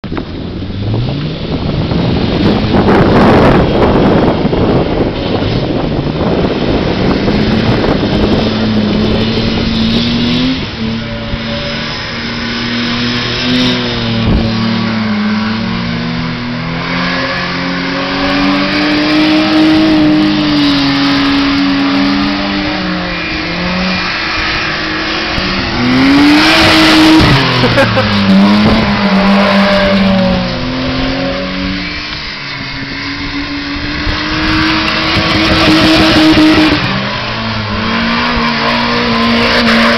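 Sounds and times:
car engines revving hard: 0.0s - 39.9s.

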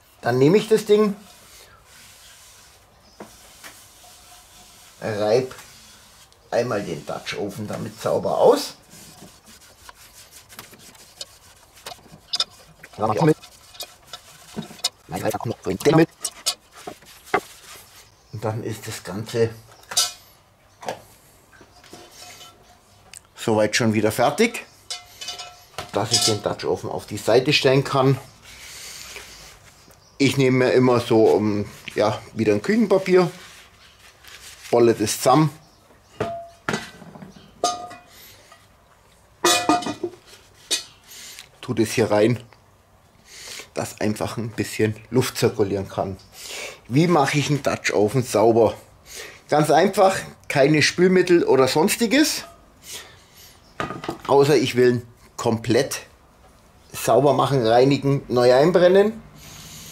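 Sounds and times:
sponge scraping cast iron pot: 0.6s - 18.1s
person speaking: 6.5s - 9.3s, 9.9s - 17.5s, 25.9s - 28.2s
metal lid clanking on pot: 37.6s - 38.1s, 39.4s - 40.9s.

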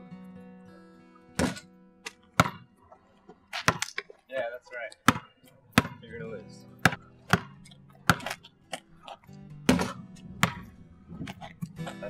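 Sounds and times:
guitar music: 0.0s - 2.8s, 4.7s - 12.0s
basketball bouncing on pavement: 1.4s - 4.2s, 5.0s - 12.0s.

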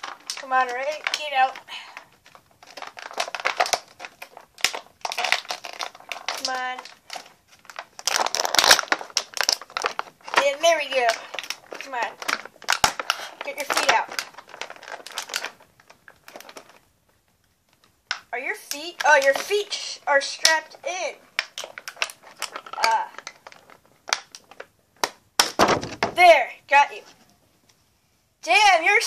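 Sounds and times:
plastic packaging crinkling: 0.0s - 26.3s.

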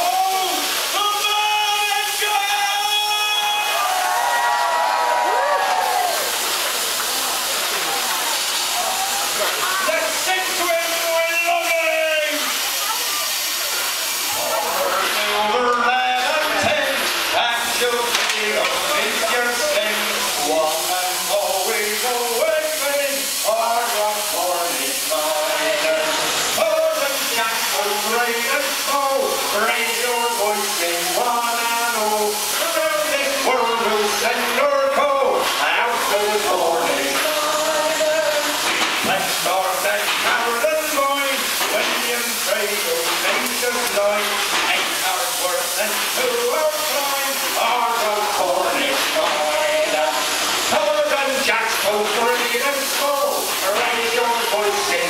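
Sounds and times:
crowd voices and calls: 0.0s - 55.0s
loud steam hiss: 0.0s - 55.0s.

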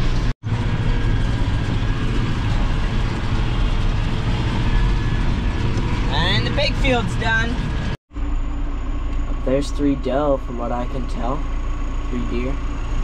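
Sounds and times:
tractor engine droning: 0.0s - 13.0s.

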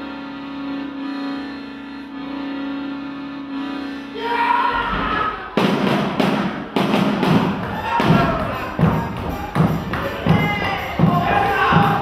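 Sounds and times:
music: 0.0s - 12.0s
voices singing or shouting: 4.1s - 5.6s, 7.5s - 12.0s.

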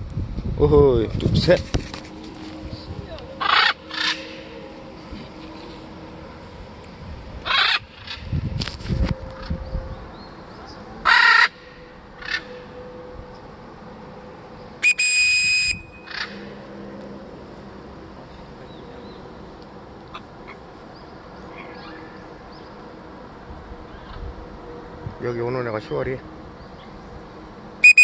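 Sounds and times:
parrot squawking: 3.4s - 4.5s, 7.4s - 8.2s
steady-pitched whistle: 14.8s - 16.1s.

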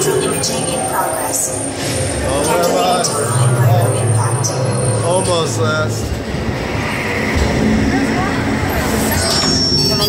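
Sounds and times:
faint voices: 0.0s - 10.0s
ride vehicle rumbling on track: 0.0s - 10.0s.

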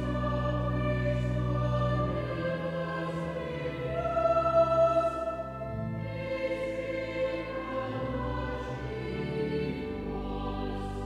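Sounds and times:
choir singing long notes: 0.0s - 11.0s.

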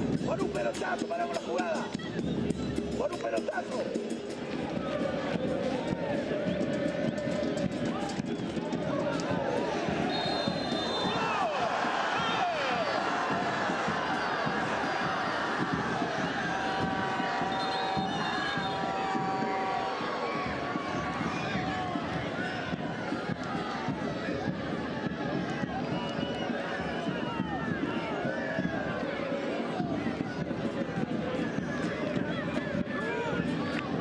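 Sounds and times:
crowd shouting and chanting: 0.0s - 34.0s
short high whistle tones: 10.1s - 11.2s.

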